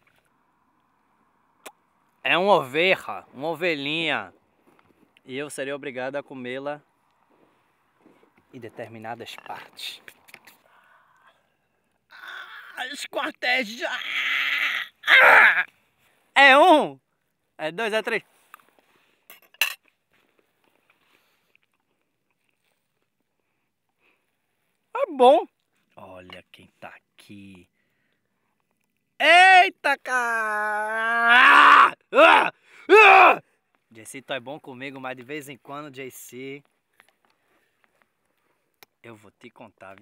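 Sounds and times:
chewing: 20.3s - 23.4s.

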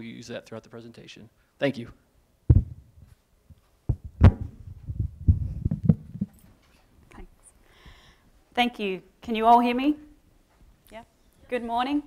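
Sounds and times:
microphone handling bumps: 2.5s - 6.6s.

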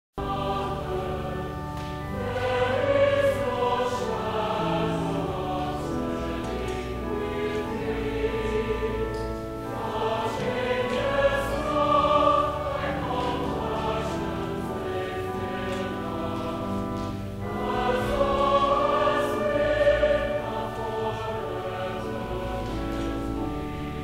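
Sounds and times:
choir singing held chords: 0.2s - 24.0s.

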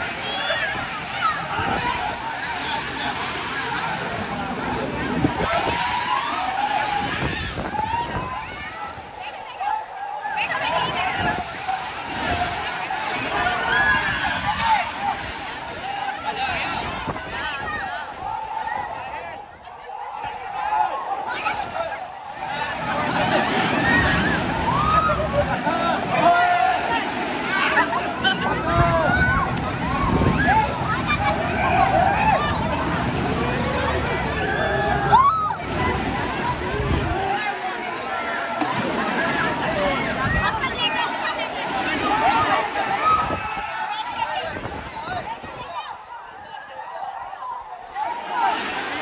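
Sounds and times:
long gliding shout: 0.0s - 38.3s
crowd voices: 0.0s - 49.0s
water sloshing and splashing: 0.0s - 49.0s.

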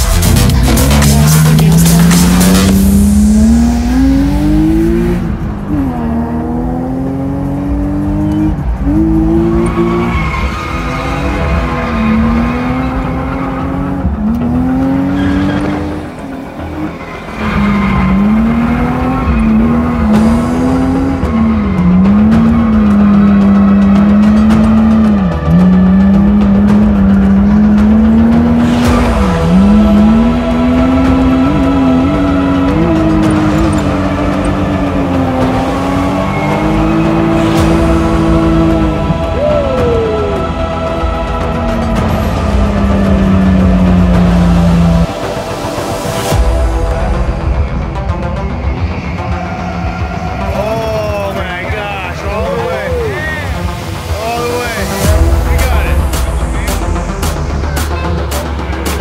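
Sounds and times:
car engine revving hard: 0.0s - 46.2s.

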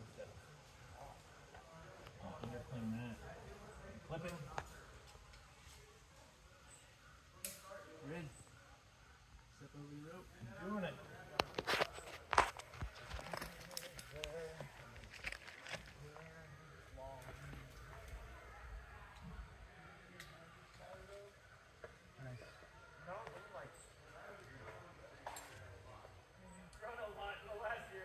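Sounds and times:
distant people talking: 0.0s - 28.0s.

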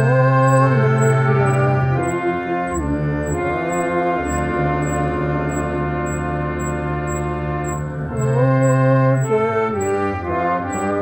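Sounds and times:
slow out-of-tune piano music: 0.0s - 11.0s.

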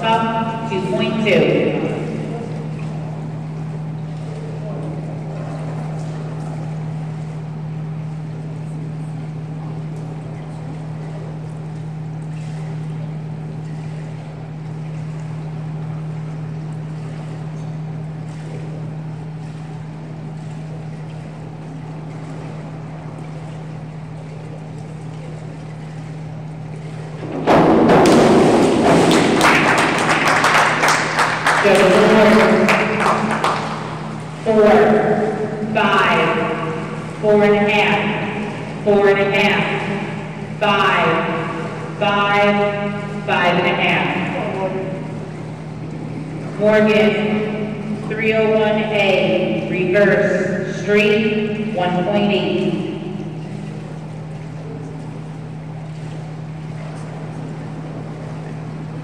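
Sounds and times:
steady low hum: 0.0s - 59.0s
applause and cheering: 29.1s - 33.8s.

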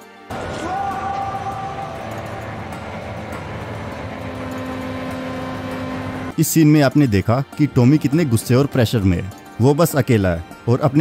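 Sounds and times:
dense rumbling noise: 0.3s - 6.3s
held tones: 0.3s - 6.3s.

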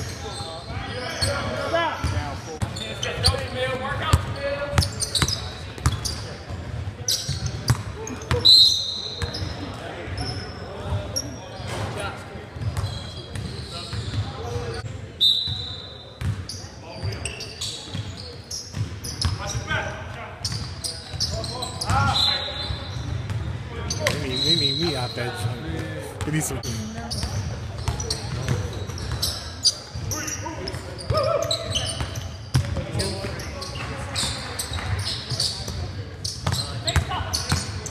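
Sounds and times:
sneakers squeaking: 0.0s - 37.9s.

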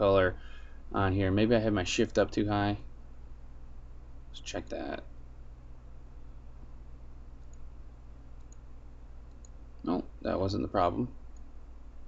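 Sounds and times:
steady low hum: 0.0s - 12.0s
computer mouse clicks: 7.4s - 7.7s, 8.3s - 9.6s, 11.3s - 11.6s.

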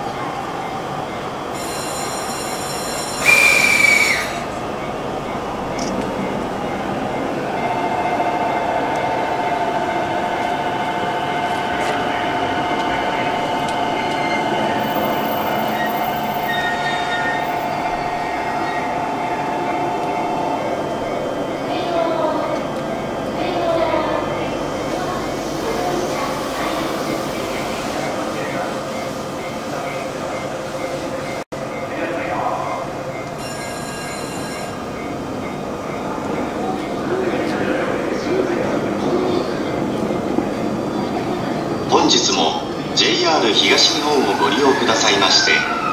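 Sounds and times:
electric train high hum: 0.0s - 45.9s
station background noise: 0.0s - 45.9s.

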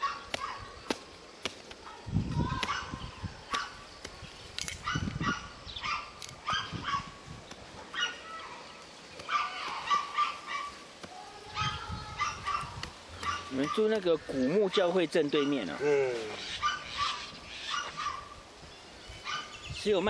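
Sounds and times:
machete chopping coconut husk: 0.3s - 1.8s
dog yipping and whimpering: 4.8s - 7.1s, 16.6s - 18.3s.

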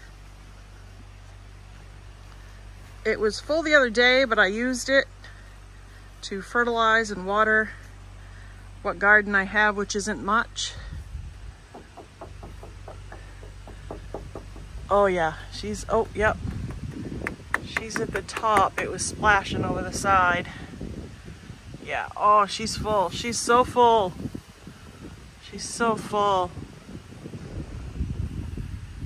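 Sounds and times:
distant tractor engine running: 0.0s - 19.3s
hand tapping plastic barrel: 11.7s - 14.9s.

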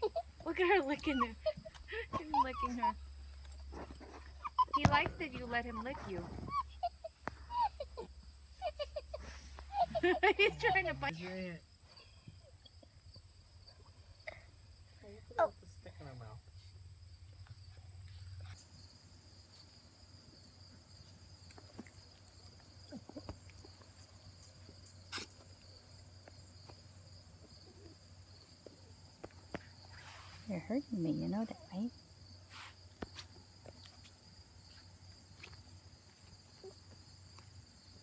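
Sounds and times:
puppy vocal sound: 1.0s - 3.0s, 3.8s - 11.1s.

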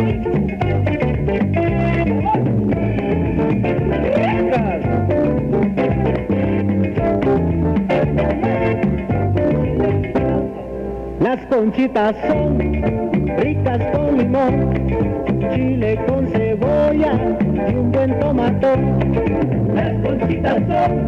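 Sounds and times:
dance band playing: 0.0s - 21.0s.

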